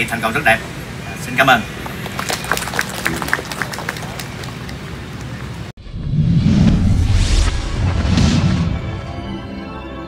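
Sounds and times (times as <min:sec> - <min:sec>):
audience applauding: 0:01.8 - 0:05.6.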